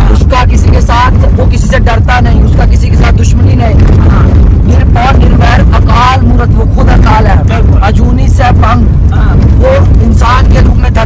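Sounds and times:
car engine rumble: 0.0 - 11.0
men talking: 0.0 - 11.0
road noise: 0.0 - 11.0.

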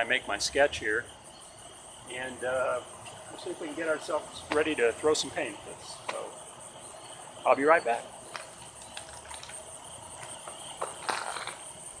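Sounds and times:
insects buzzing: 0.0 - 12.0.

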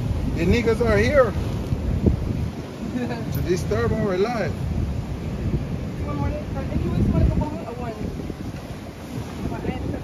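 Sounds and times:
surf breaking on rocks: 0.0 - 10.0
wind buffeting microphone: 0.0 - 10.0.

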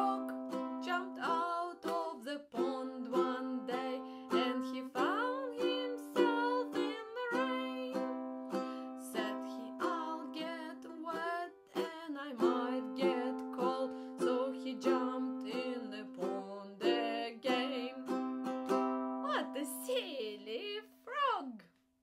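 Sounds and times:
woman singing: 0.0 - 18.4, 19.3 - 21.4
ukulele strumming chords: 0.0 - 20.6.

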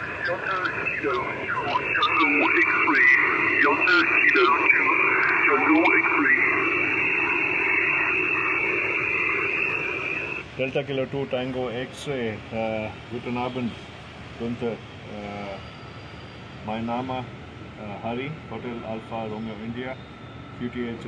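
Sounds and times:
hissy radio voice: 0.0 - 15.7.

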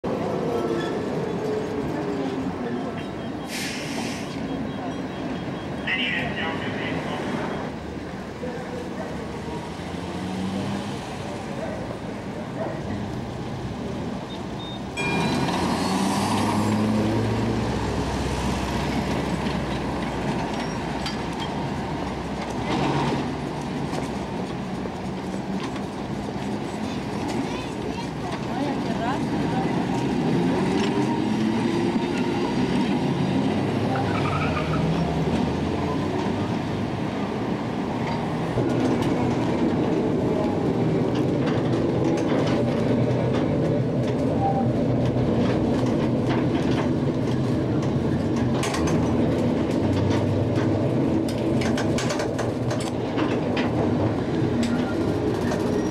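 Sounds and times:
city street traffic: 0.0 - 55.9
people's voices: 0.1 - 9.8, 26.8 - 32.6.

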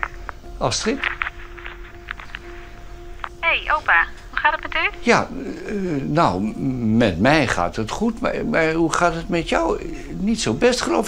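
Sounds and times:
held music tone: 0.0 - 11.0
woman's voice through phone earpiece: 3.4 - 5.0.

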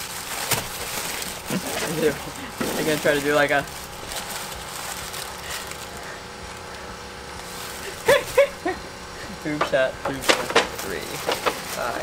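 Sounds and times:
person laughing: 1.4 - 2.6, 7.8 - 9.4.

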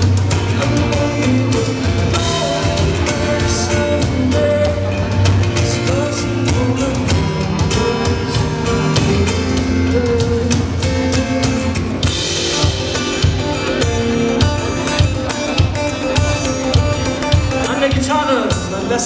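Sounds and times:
drum hits: 0.0 - 18.7
live pop-rock band playing: 0.0 - 19.0.

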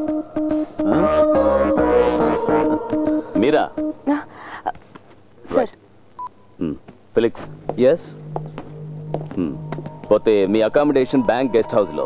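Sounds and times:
mobile phone beep: 6.2 - 6.6.

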